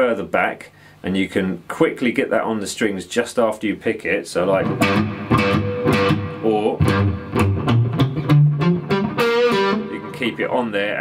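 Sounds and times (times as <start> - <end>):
palm-muted electric guitar notes: 4.6 - 10.5.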